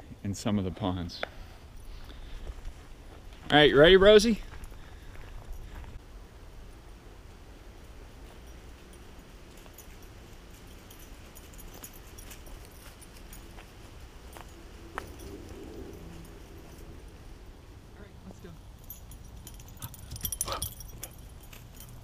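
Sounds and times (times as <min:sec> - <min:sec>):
low rumble on microphone: 0:14.4 - 0:18.0.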